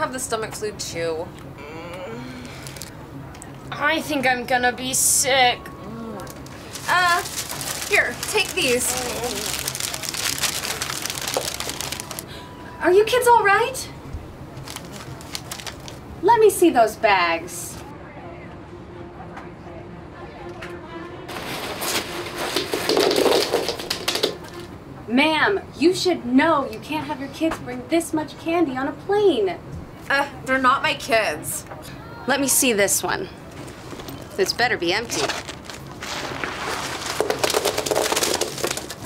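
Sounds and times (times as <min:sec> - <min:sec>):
wrappers crinkling: 0:02.6 - 0:02.9, 0:06.2 - 0:12.4, 0:14.6 - 0:16.0, 0:21.3 - 0:24.7, 0:33.6 - 0:39.0
wrapped candies clattering: 0:02.6 - 0:03.0, 0:06.2 - 0:12.4, 0:14.6 - 0:16.0, 0:21.3 - 0:24.7, 0:33.6 - 0:39.0
backpack rustling: 0:06.3 - 0:12.2, 0:14.6 - 0:16.0, 0:35.0 - 0:39.0.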